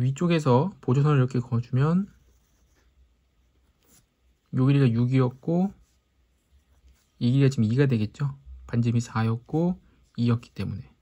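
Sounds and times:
pen scratching on paper: 0:02.0 - 0:03.0.

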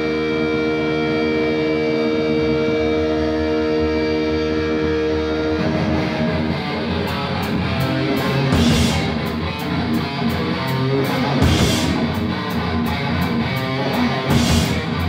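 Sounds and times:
electric guitar riff: 0:00.0 - 0:15.0
heavy metal band: 0:00.0 - 0:15.0
drum cymbals: 0:08.2 - 0:09.7, 0:11.2 - 0:12.5, 0:14.0 - 0:15.0.

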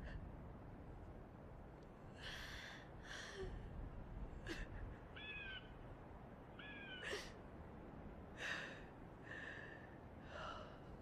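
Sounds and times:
woman sobbing: 0:04.4 - 0:05.1.

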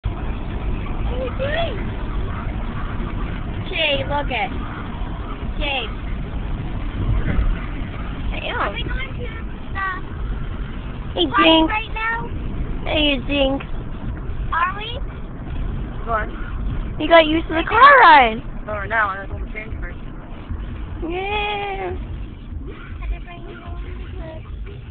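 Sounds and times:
car cabin road noise: 0:00.0 - 0:24.9.

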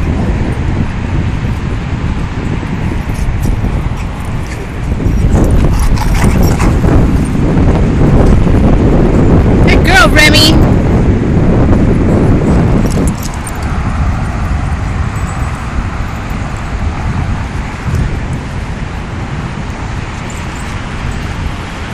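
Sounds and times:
wind rumbling on microphone: 0:00.0 - 0:21.9.

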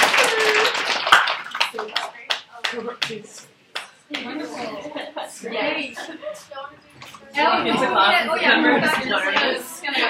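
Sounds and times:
group applauding: 0:00.0 - 0:04.3.

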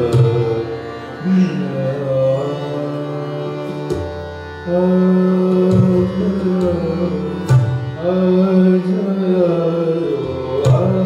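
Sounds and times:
person singing gliding notes: 0:00.0 - 0:03.9
harmonium and tanpura drone: 0:00.0 - 0:11.0.

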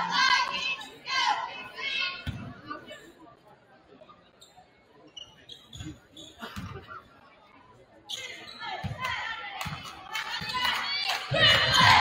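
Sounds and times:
voices in a gym: 0:00.0 - 0:12.0.

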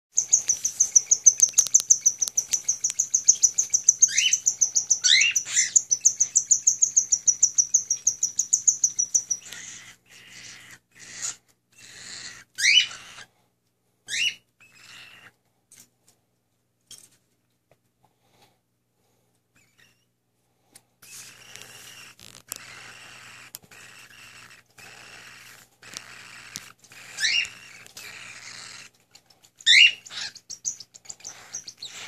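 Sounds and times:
upward-sweeping bird calls: 0:00.1 - 0:13.2, 0:21.1 - 0:28.9, 0:29.7 - 0:32.0
raspy bird calls: 0:00.1 - 0:13.3, 0:21.0 - 0:29.0, 0:29.6 - 0:32.0
cockatiels chirping: 0:00.2 - 0:13.3, 0:14.1 - 0:15.3, 0:21.0 - 0:29.0, 0:29.6 - 0:32.0.

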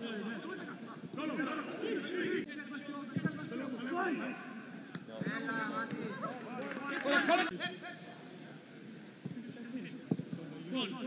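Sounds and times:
men calling and shouting: 0:00.0 - 0:11.0.

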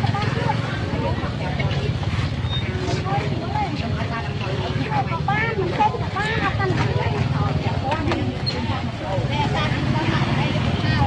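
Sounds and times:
motorbike engine rumbling: 0:00.0 - 0:11.0
people talking: 0:00.0 - 0:11.0.

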